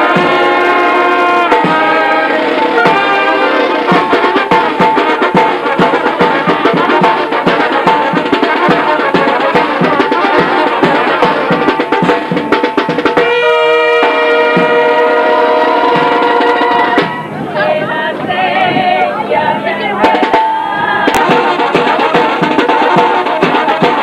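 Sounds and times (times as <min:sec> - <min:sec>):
brass band playing: 0:00.0 - 0:24.0
fast drum hits: 0:01.4 - 0:15.0, 0:19.9 - 0:24.0.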